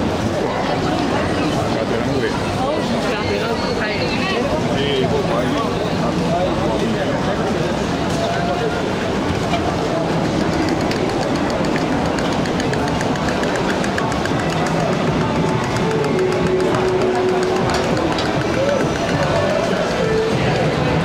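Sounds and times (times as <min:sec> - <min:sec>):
passers-by talking: 0:00.0 - 0:21.0
street hubbub: 0:00.0 - 0:21.0
music playing: 0:10.1 - 0:21.0.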